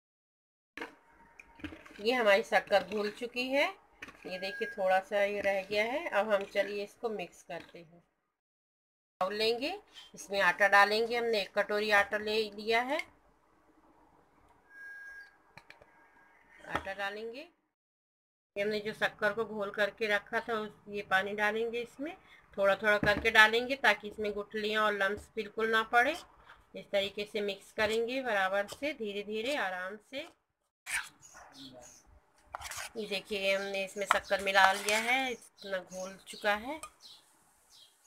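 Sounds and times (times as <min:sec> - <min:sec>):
spoon stirring batter in steel bowl: 0:01.3 - 0:07.8, 0:24.6 - 0:29.6, 0:32.4 - 0:37.0.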